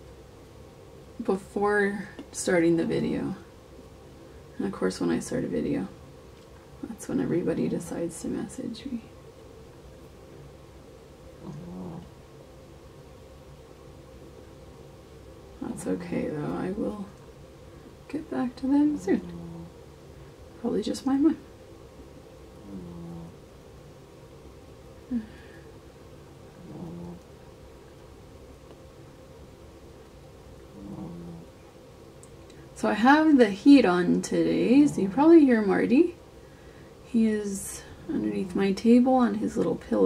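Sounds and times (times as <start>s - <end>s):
steady low hum: 0.0s - 40.0s
cat purring: 11.3s - 12.3s, 18.0s - 19.9s, 22.5s - 23.6s, 25.0s - 27.9s, 30.6s - 31.7s
pet animal vocalizing low: 11.4s - 12.2s, 19.0s - 19.8s, 22.6s - 23.4s, 26.5s - 27.4s, 30.7s - 31.6s.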